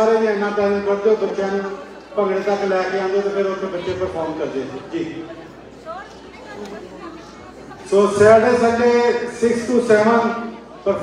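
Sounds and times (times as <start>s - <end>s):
man's amplified voice: 0.0s - 5.4s, 7.8s - 11.0s
chatter of people talking: 0.0s - 11.0s.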